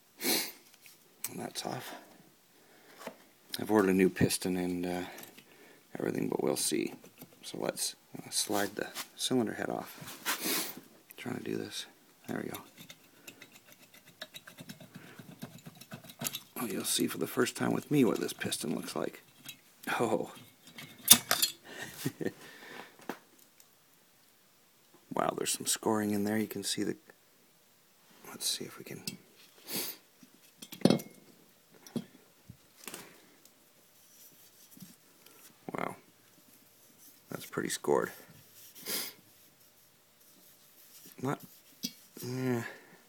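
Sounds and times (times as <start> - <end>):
metal clicks and scrapes: 12.4 - 21.6, 41.0 - 42.2
metal knocks and clinks on concrete: 30.6 - 31.2.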